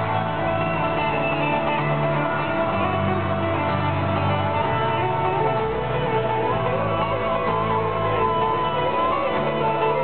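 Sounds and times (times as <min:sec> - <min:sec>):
strummed acoustic guitars: 0:00.0 - 0:10.0.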